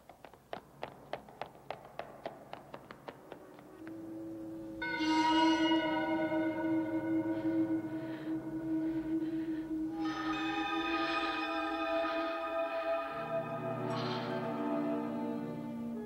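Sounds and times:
running footsteps on floor: 0.0s - 4.1s
low held note: 3.9s - 16.0s
sustained music chord: 4.1s - 16.0s.

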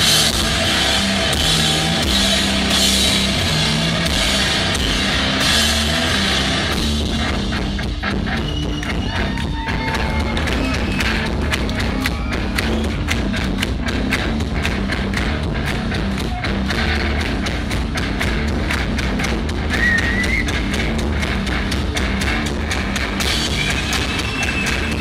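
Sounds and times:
heavy rock band playing: 0.0s - 25.0s.

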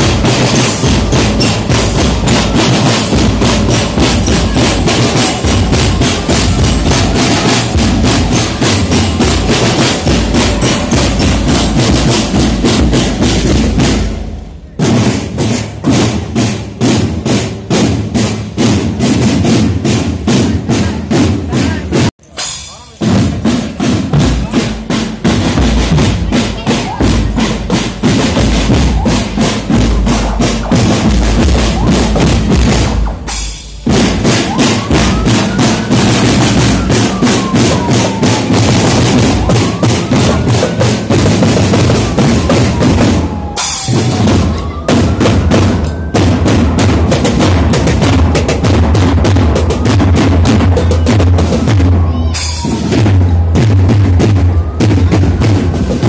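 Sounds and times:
marching drum band: 0.0s - 56.0s.

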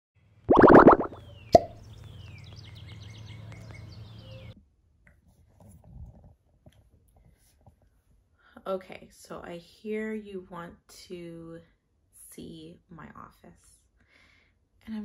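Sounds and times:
plopping pops: 0.5s - 1.8s.

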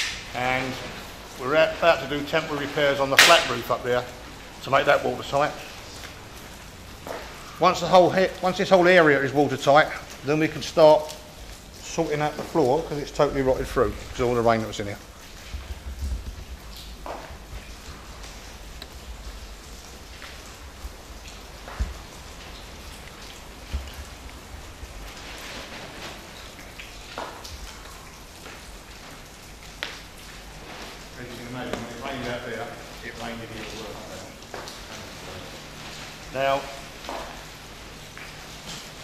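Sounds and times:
footsteps: 7.0s - 7.5s, 15.3s - 18.6s, 34.4s - 39.0s.

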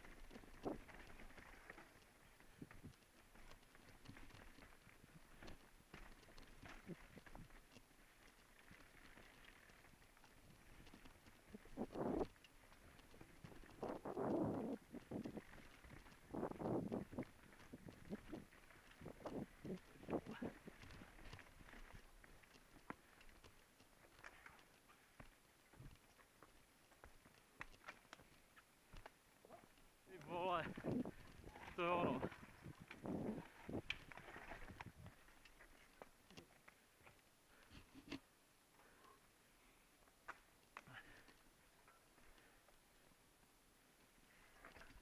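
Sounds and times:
mountain bike clattering over rocks: 0.0s - 25.1s.

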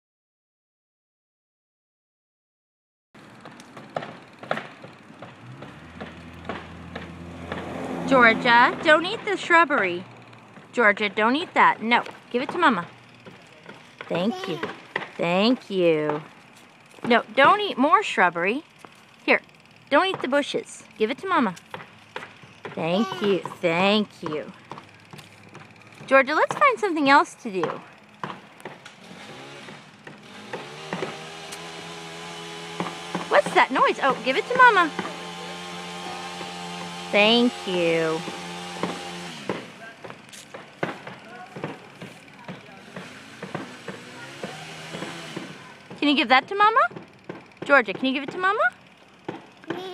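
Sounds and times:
small motor humming: 3.2s - 49.9s.

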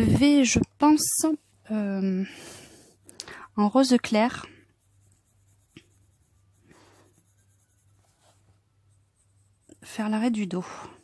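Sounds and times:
pencil scratching on paper: 4.0s - 10.5s.

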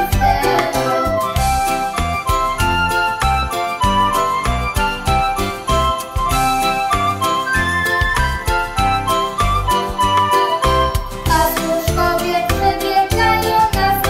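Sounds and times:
instrumental music with beat: 0.0s - 14.0s.

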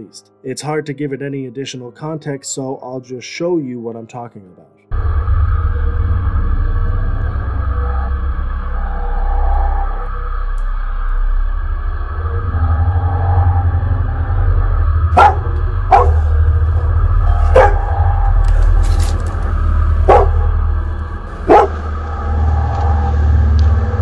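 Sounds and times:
low droning rumble: 4.9s - 24.0s.

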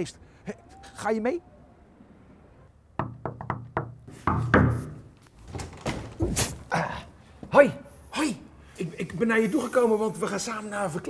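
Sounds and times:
knuckles knocking on glass: 3.0s - 5.0s
thumps and clatter: 3.0s - 6.6s.

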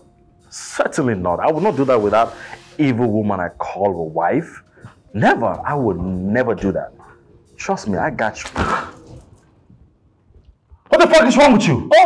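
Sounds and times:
soft small sounds: 5.8s - 10.9s.

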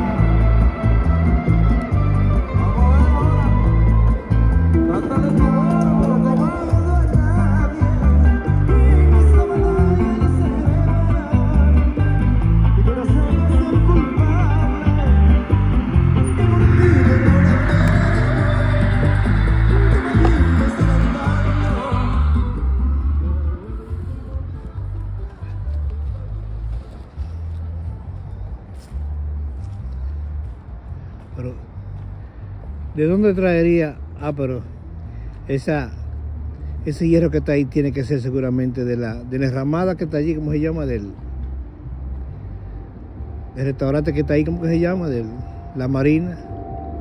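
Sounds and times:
person singing: 0.0s - 26.0s
music with low beat: 0.0s - 32.9s.

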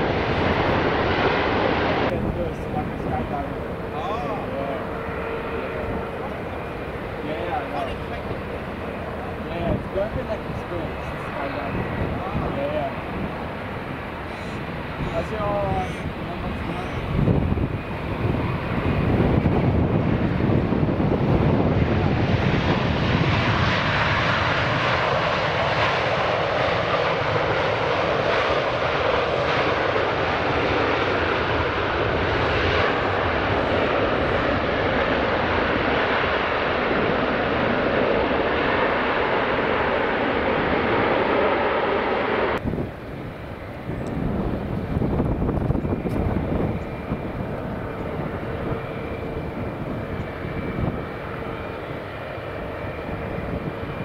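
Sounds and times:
high jet whine: 0.0s - 54.0s
jet engines landing: 0.0s - 54.0s.

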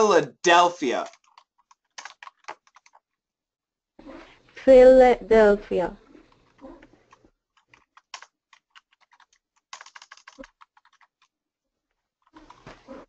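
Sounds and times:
faint keyboard typing: 0.5s - 3.2s, 6.0s - 11.3s, 11.9s - 13.0s.

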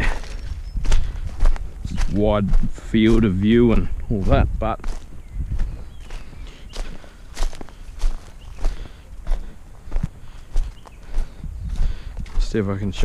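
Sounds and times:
footsteps crunching on leaf litter: 0.0s - 13.0s.

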